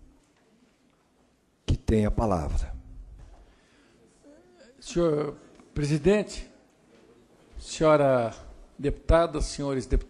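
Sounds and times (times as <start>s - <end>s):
man speaking into a microphone: 1.6s - 3.0s, 4.3s - 6.6s, 7.5s - 10.0s.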